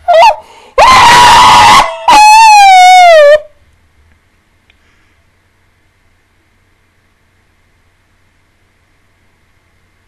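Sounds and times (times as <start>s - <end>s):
woman shrieking with laughter: 0.1s - 3.4s.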